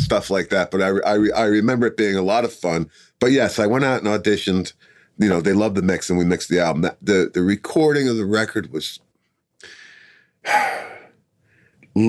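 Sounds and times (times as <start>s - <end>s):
man breathing: 4.7s - 5.2s, 9.6s - 11.9s.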